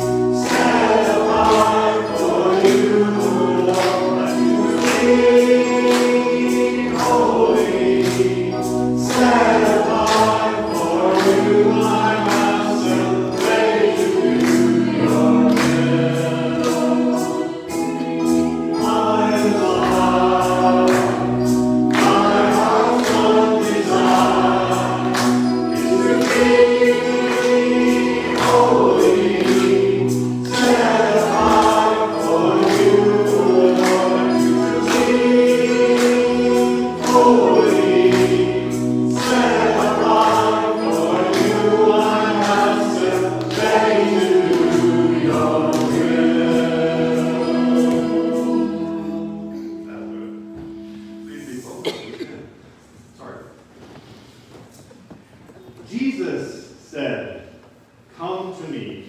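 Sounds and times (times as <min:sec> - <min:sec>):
choir singing in unison: 0:00.0 - 0:49.8
instrumental accompaniment with beat: 0:00.0 - 0:51.5.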